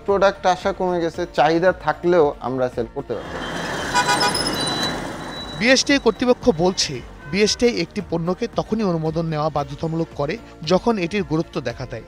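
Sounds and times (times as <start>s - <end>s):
road traffic noise: 3.0s - 9.4s
vehicle horn toot: 3.2s - 7.7s.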